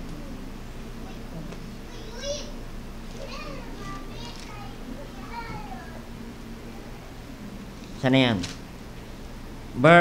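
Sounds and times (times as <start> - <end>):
steady low hum: 0.0 - 10.0
faint children shouting: 3.2 - 6.0.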